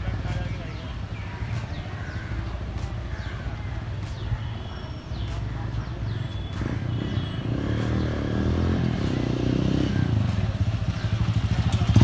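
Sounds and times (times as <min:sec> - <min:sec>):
birds chirping: 0:00.0 - 0:12.0
motorcycle engine rumbling: 0:00.0 - 0:12.0.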